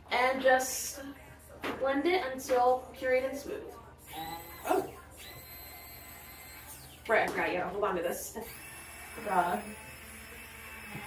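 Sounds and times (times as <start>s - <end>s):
immersion blender motor whining: 4.1s - 7.0s, 8.4s - 11.0s.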